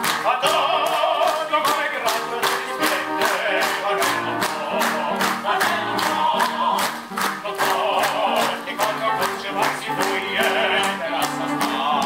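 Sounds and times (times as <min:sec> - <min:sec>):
instrumental accompaniment: 0:00.0 - 0:12.0
operatic singing with vibrato: 0:00.0 - 0:12.0.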